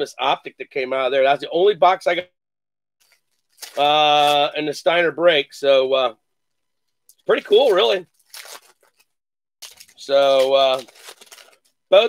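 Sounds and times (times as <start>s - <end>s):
plastic wrapper crinkling: 3.0s - 4.5s, 6.5s - 12.0s.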